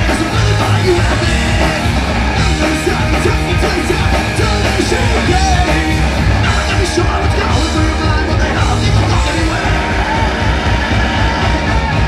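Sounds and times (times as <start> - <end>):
punk rock band playing live: 0.0 - 12.0
shouted lead vocals: 0.0 - 12.0.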